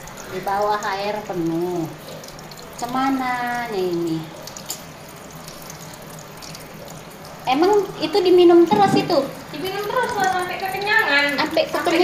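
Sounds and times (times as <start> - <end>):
tap water pouring into plastic: 0.0 - 12.0.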